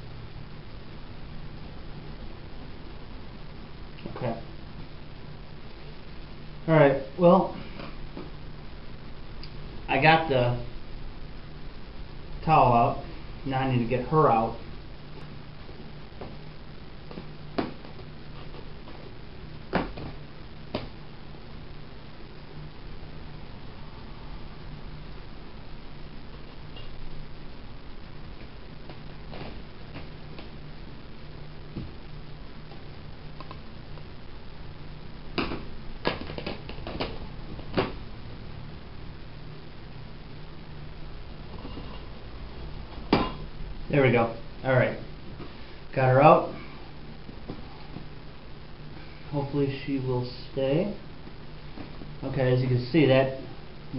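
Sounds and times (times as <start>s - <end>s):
steady low hum: 0.0s - 53.9s.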